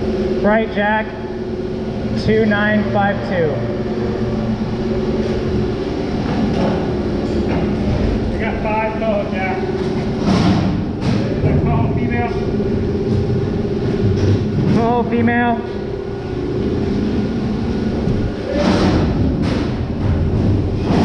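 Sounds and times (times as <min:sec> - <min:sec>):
machinery hum: 0:00.0 - 0:21.0.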